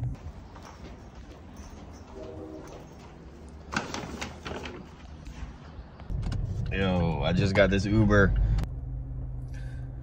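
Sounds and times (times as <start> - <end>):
paper and plastic bags rustling: 2.8 - 5.6
low hum: 5.3 - 10.0.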